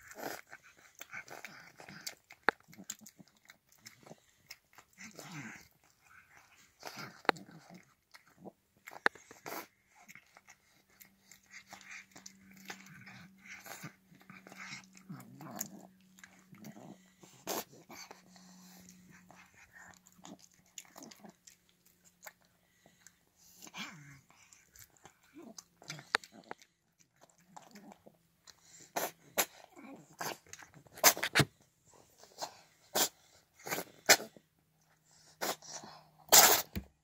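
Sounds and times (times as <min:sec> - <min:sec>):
cat chewing wet food: 0:00.0 - 0:37.0
cat snorting wetly: 0:32.4 - 0:34.4, 0:35.2 - 0:36.8.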